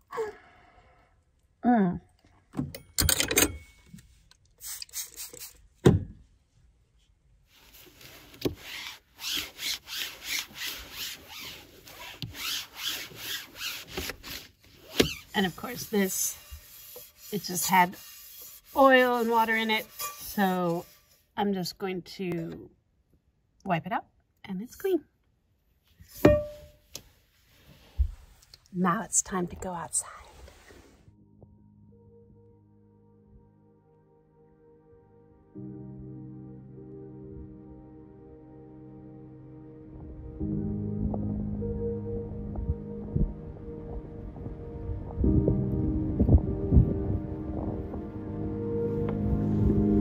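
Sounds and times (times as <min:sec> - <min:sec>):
thump: 0:05.8 - 0:06.2
hand wiping oily board: 0:15.0 - 0:21.2
struck musical note ringing: 0:26.2 - 0:26.8.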